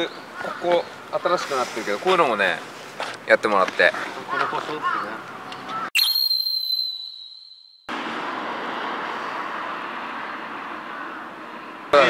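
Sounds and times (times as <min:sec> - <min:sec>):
outdoor background hiss: 0:00.0 - 0:05.6
high ringing tone effect: 0:06.0 - 0:07.9.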